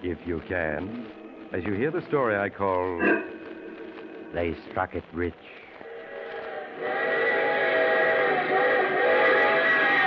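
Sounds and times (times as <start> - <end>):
steam locomotive whistle: 6.8 - 10.0.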